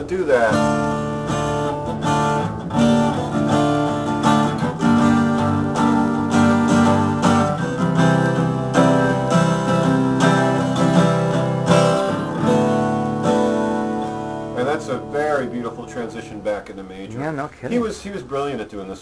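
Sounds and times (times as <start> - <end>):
guitar strumming chords: 0.0 - 17.8.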